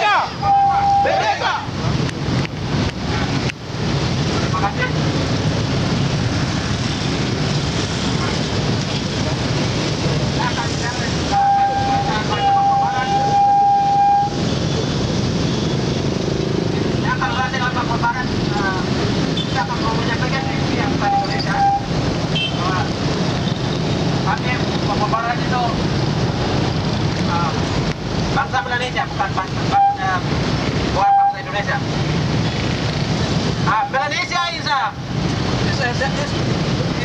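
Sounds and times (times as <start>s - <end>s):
man speaking through megaphone: 0.0s - 1.8s, 4.5s - 5.1s, 10.3s - 14.2s, 16.9s - 23.0s, 24.2s - 25.9s, 28.3s - 31.9s, 33.6s - 35.0s
rumble of traffic: 0.0s - 37.0s
high-pitched tone: 0.3s - 1.3s, 11.3s - 14.4s, 20.4s - 22.0s.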